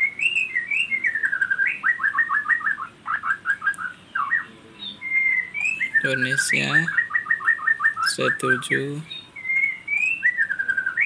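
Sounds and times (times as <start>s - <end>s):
songbird singing: 0.0s - 11.0s.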